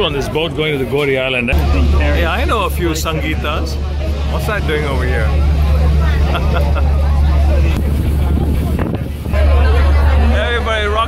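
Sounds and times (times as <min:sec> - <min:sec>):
ferry engine rumble: 0:00.0 - 0:11.0
passengers chattering: 0:00.0 - 0:11.0.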